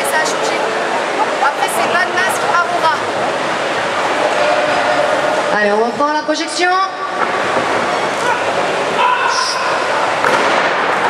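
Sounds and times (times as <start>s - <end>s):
crowd noise echoing in hall: 0.0s - 11.0s.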